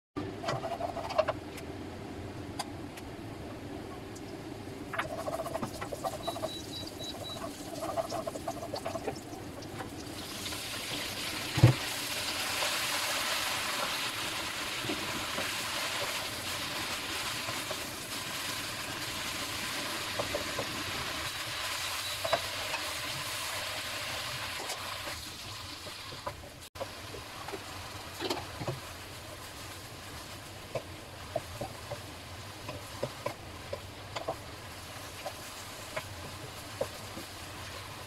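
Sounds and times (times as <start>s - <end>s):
short high beeps: 6.2s - 7.4s
food sizzling in a pan: 10.0s - 38.0s.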